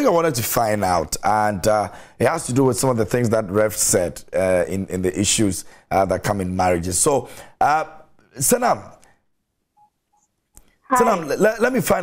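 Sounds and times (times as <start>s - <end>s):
man talking: 0.0s - 8.9s, 10.9s - 12.0s
faint electronic beeps: 9.8s - 10.3s.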